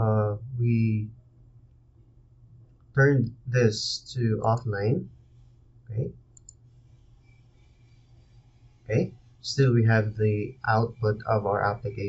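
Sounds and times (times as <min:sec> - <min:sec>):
faint room hiss: 0:00.0 - 0:12.0
computer mouse clicks: 0:04.4 - 0:04.7, 0:06.4 - 0:08.7.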